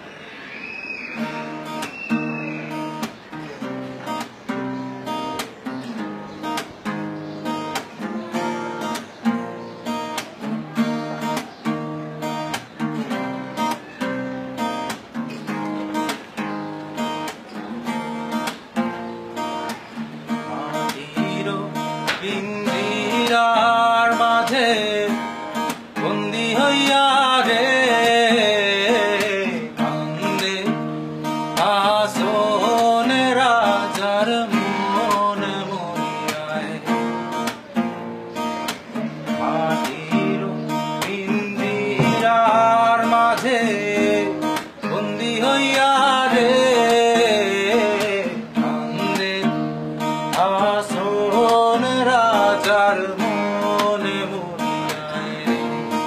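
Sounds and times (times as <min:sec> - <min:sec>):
acoustic guitar playing: 0:00.0 - 0:56.0
man singing: 0:20.3 - 0:37.4, 0:39.2 - 0:56.0.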